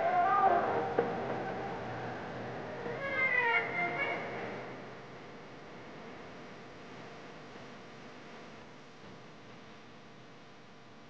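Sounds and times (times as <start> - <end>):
meow-like gliding cries: 0.0 - 4.6.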